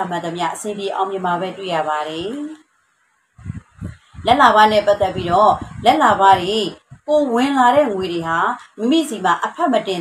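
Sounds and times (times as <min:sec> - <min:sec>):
woman speaking: 0:00.0 - 0:02.7, 0:03.4 - 0:10.0
soft low thumps: 0:03.4 - 0:08.4.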